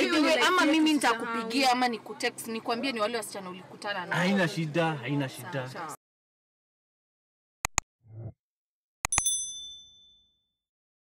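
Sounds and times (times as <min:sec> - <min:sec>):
mouse-click sound effects: 0:07.6 - 0:08.3, 0:09.0 - 0:09.3
notification bell ding: 0:09.1 - 0:10.4.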